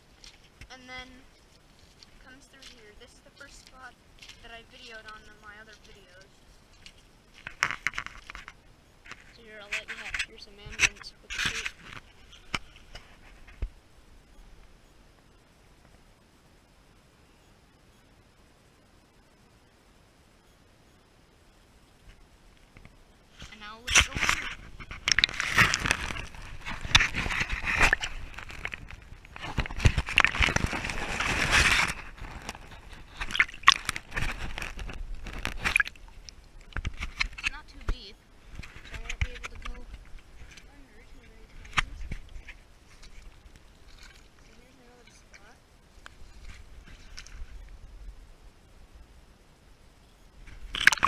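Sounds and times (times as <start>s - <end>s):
creek water sloshing and splashing: 23.4s - 37.7s, 38.4s - 47.8s, 50.5s - 51.0s.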